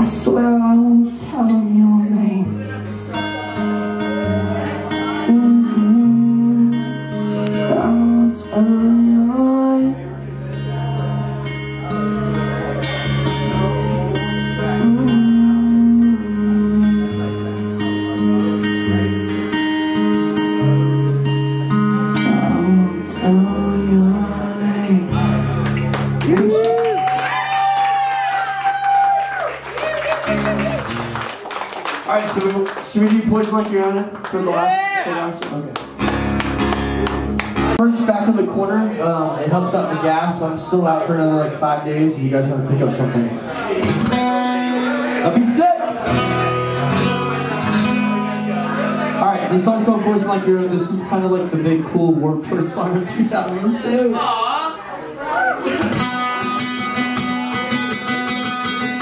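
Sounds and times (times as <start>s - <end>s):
man singing: 0.0s - 17.6s, 22.0s - 25.6s
strummed acoustic guitar: 0.0s - 26.4s, 35.6s - 53.8s, 55.6s - 59.0s.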